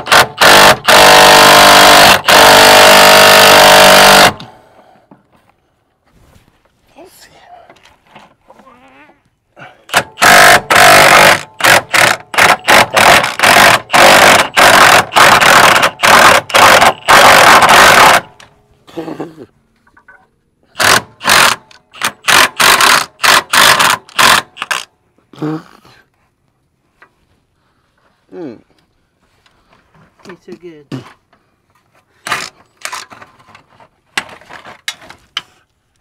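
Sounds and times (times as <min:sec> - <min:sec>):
impact wrench hammering: 0:00.0 - 0:04.5, 0:09.9 - 0:18.3.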